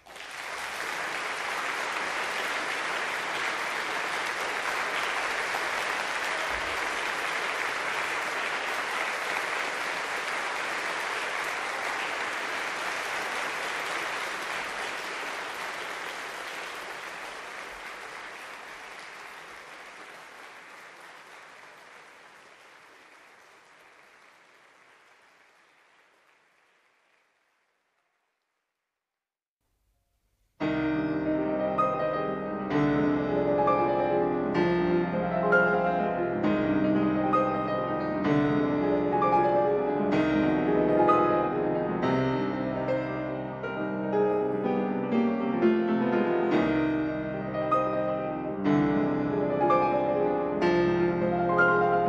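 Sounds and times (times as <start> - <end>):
audience applauding: 0.0 - 28.4, 51.4 - 52.0.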